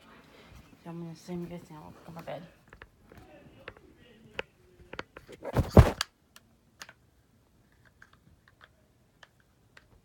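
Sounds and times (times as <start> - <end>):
phone rustling and thumping: 5.2 - 6.0.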